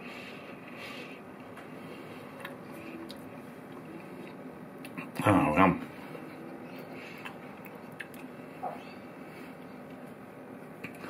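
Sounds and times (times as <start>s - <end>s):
quiet chewing: 1.4s - 5.2s, 6.2s - 10.2s, 10.8s - 11.0s
faint mouth clicks: 7.2s - 8.3s.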